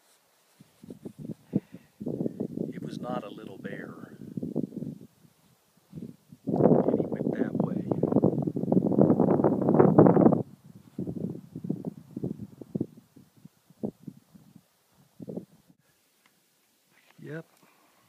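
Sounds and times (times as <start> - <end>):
wind buffeting microphone: 0.8 - 15.8.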